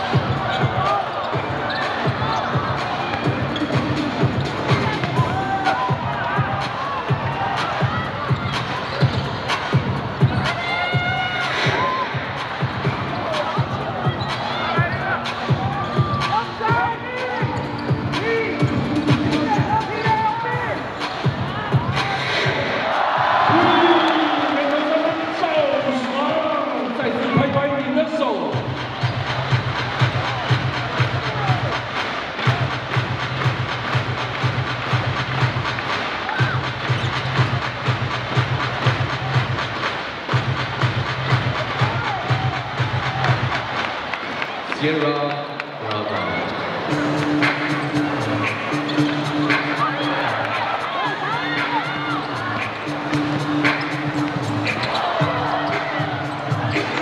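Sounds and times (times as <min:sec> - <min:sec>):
rhythmic beat with heavy bass: 0:00.0 - 0:23.6, 0:28.5 - 0:43.8, 0:46.9 - 0:57.0
crowd voices: 0:00.0 - 0:57.0.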